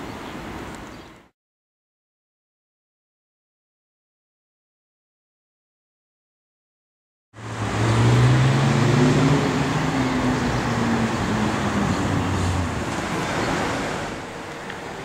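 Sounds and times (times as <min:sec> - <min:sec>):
car engine and tyre noise: 0:07.4 - 0:15.0.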